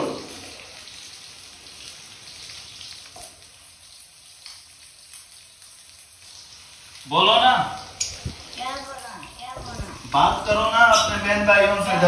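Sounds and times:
fish sizzling in oil: 0.0 - 12.0.

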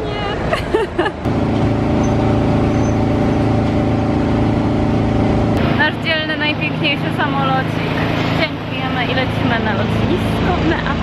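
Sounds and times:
jet airliner droning hum: 0.0 - 11.0
low whine: 0.0 - 11.0.

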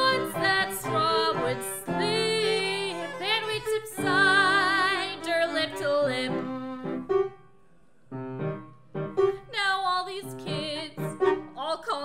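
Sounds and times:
person singing: 0.0 - 6.7, 9.5 - 12.0
keyboard playing separate notes: 6.0 - 9.4.

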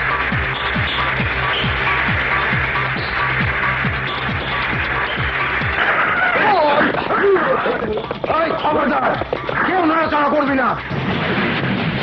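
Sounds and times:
action film sound effects: 0.0 - 12.0.

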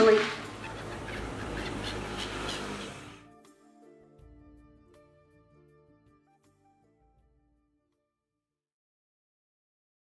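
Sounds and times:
gulls squawking: 0.0 - 3.2.

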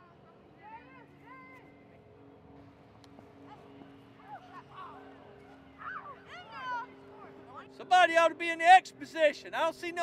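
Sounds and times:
distant shouting voices: 3.2 - 10.0.

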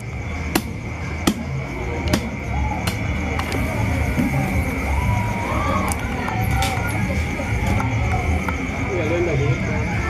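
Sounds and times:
people talking indistinctly: 0.4 - 10.0.

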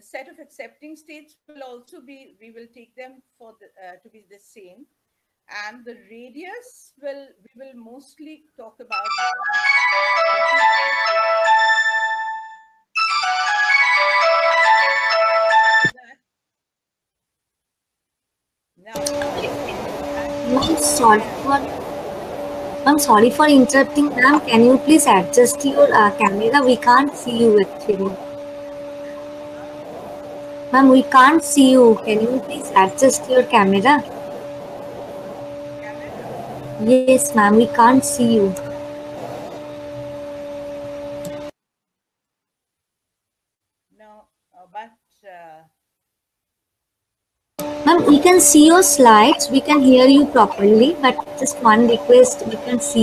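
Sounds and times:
faint background hiss: 0.0 - 9.0
phone ringtone melody: 9.0 - 15.9
steady low hum: 19.0 - 41.5, 47.6 - 53.0.

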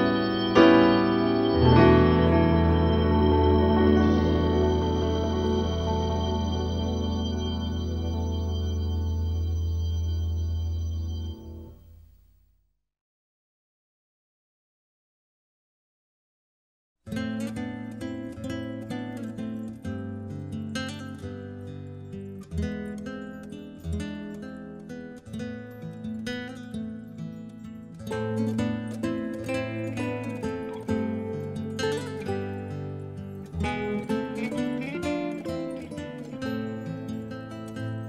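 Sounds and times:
acoustic guitar music: 0.0 - 12.0, 17.1 - 38.0.

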